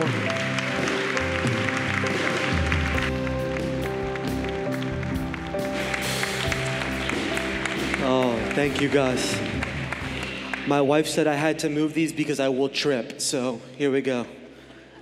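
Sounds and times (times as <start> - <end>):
band playing long held notes: 0.0 - 11.1
crowd clapping: 0.0 - 11.5.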